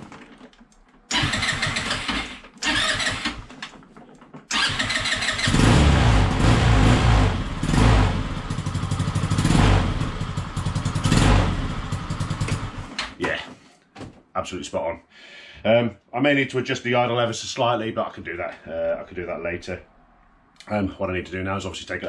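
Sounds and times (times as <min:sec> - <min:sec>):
scooter electric starter cranking: 0:01.1 - 0:03.7, 0:04.5 - 0:05.8
scooter engine running: 0:04.5 - 0:12.9.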